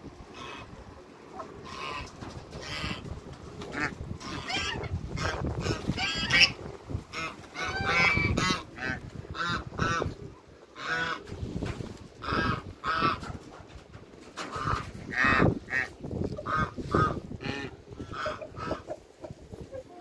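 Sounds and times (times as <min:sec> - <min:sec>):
geese honking: 0:00.3 - 0:11.2, 0:12.2 - 0:13.3, 0:14.4 - 0:19.0.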